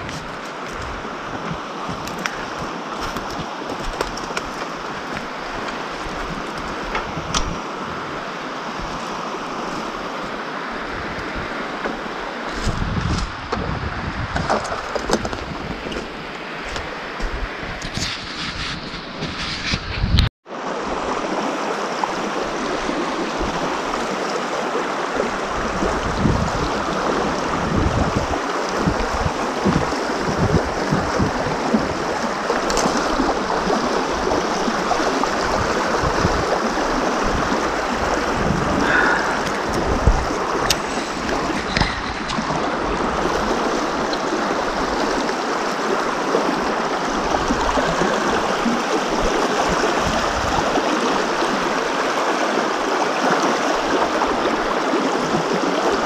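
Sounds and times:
wind buffeting microphone: 0.0s - 20.3s, 25.1s - 52.1s
river running over stones: 0.0s - 56.0s.

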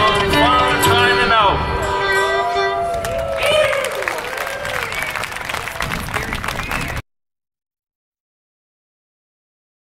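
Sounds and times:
audience applauding: 2.8s - 7.0s.

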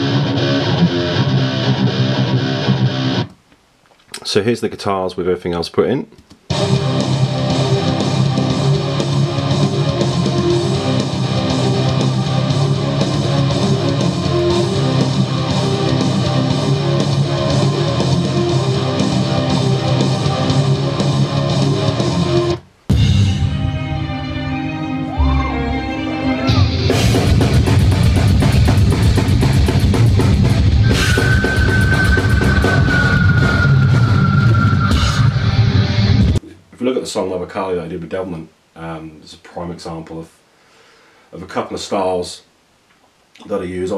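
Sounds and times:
heavy metal music: 0.0s - 3.3s, 6.5s - 36.4s
live metal band: 0.0s - 3.3s, 6.5s - 36.4s
drums: 0.0s - 4.3s, 6.2s - 36.8s
distorted guitars: 0.0s - 4.4s, 6.4s - 36.6s.

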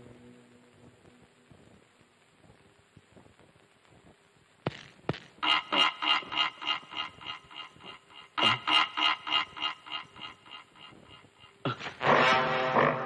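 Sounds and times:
man laughing loudly: 5.4s - 12.0s.

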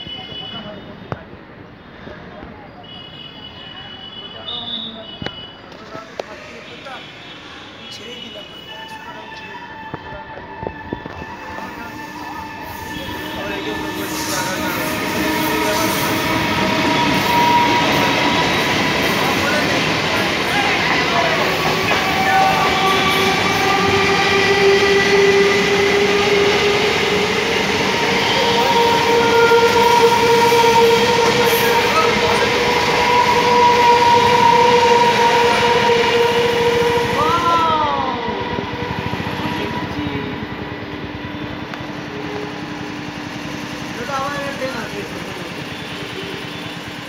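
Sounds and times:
train brake squeal: 6.5s - 19.6s, 41.3s - 47.0s
electric train whine: 8.8s - 47.0s
wheels rumbling on rail: 10.1s - 47.0s.

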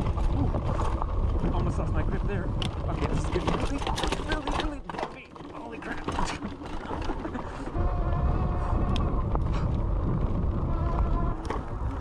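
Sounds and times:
wind on microphone: 0.0s - 4.1s, 7.7s - 12.0s
bike tyres rumbling on dirt: 0.0s - 12.0s.

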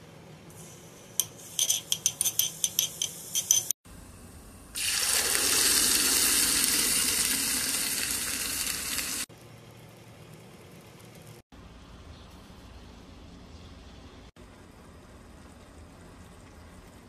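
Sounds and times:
loud sizzling hiss: 4.8s - 9.3s.

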